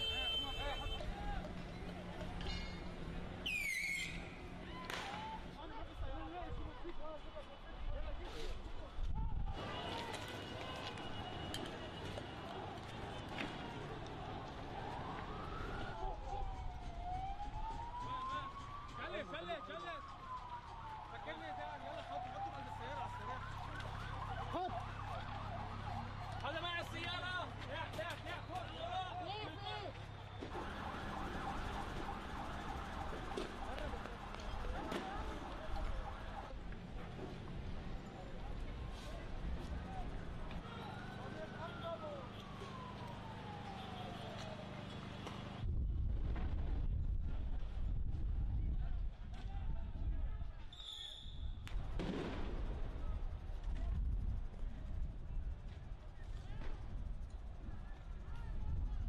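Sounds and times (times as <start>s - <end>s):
rumble of crowded street: 0.0s - 59.0s
shrill whistle-like tone: 3.4s - 4.3s, 50.7s - 51.6s
sharp crack: 4.8s - 5.4s
emergency sirens yelping: 9.6s - 45.5s.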